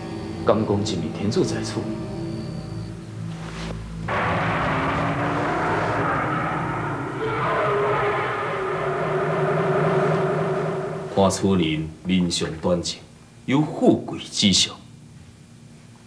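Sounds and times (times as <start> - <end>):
sustained music chords: 4.0 - 11.7.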